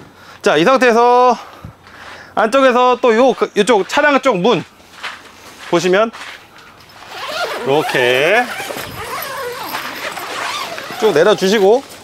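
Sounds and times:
stiff fabric rustling: 4.7 - 12.0
zipper being run: 6.9 - 12.0.

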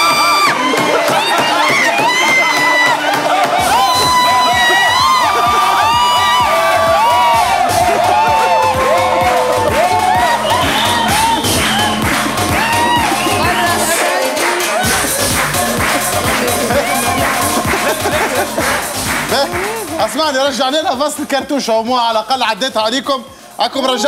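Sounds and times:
crowd cheering and shouting: 0.0 - 21.8
music with steady beat: 0.0 - 24.0.

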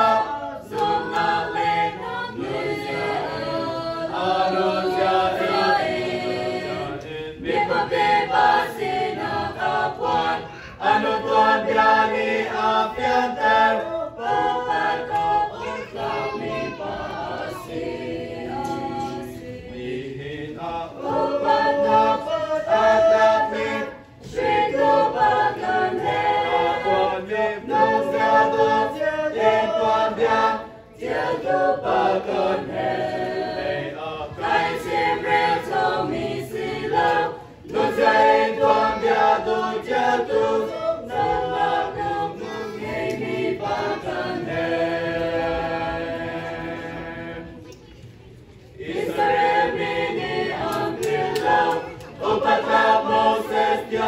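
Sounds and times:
choir singing sustained notes: 0.0 - 47.7, 48.7 - 54.0.

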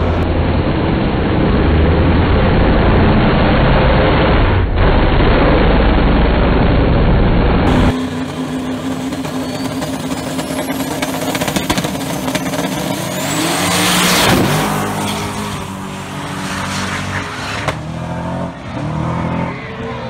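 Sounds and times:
drag car engines revving: 0.0 - 20.0.

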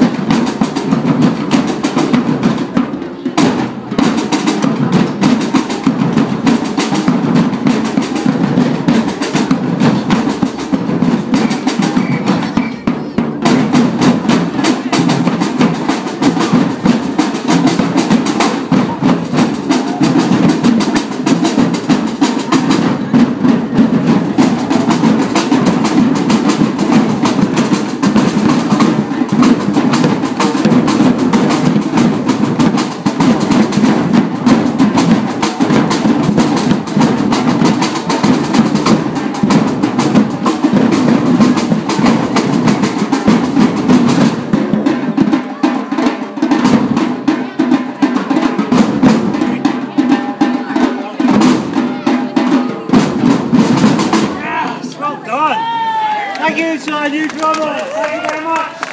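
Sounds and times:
bass drums beating: 0.0 - 44.8
snare drums: 0.0 - 58.9.

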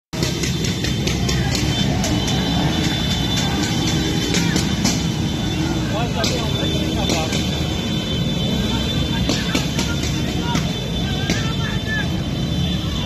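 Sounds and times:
motorcycle engines running: 0.2 - 13.0
people shouting: 0.2 - 13.0.

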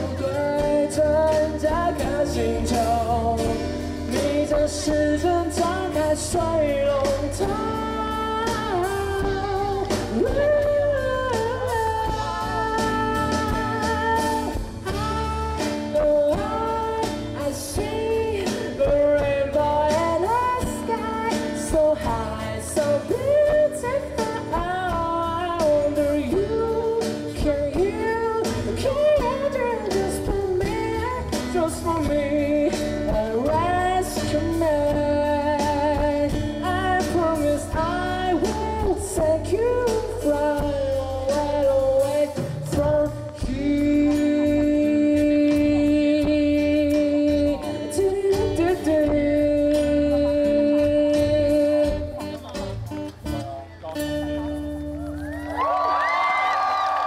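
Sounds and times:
man singing: 0.0 - 54.6.

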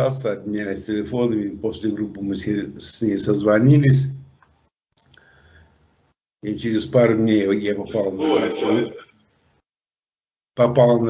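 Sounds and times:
man talking: 0.0 - 4.0, 6.5 - 9.0, 10.6 - 11.0.

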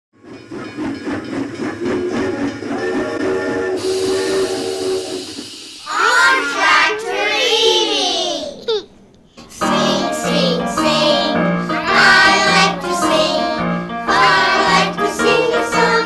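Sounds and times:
steam locomotive chuffing: 0.2 - 6.9, 9.5 - 16.0
steam hissing: 0.3 - 6.9
steam whistle: 2.1 - 6.2
children's voices: 5.8 - 8.9.

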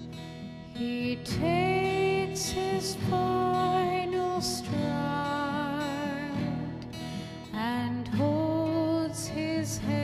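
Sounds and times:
guitar: 0.0 - 10.0
woman singing a ballad: 0.2 - 10.0.

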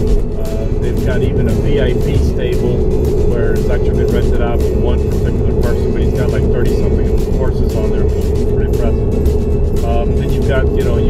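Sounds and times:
background music: 0.0 - 11.0
car road and engine rumble: 0.0 - 11.0
man's voice: 0.4 - 9.1, 9.8 - 11.0.

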